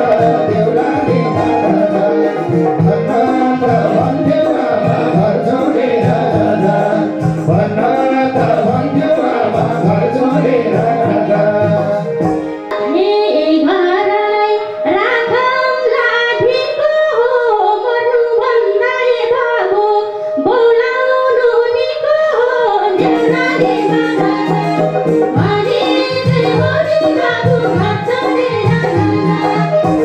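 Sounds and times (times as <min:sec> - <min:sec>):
man singing: 0:00.0 - 0:12.3
band with drums and plucked strings: 0:00.0 - 0:13.3, 0:23.0 - 0:30.0
woman singing folk song: 0:12.8 - 0:29.9.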